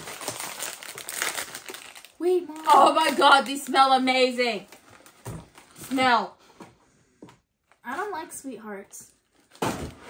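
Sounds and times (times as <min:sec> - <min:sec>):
candy packaging crinkling: 0:00.0 - 0:06.1.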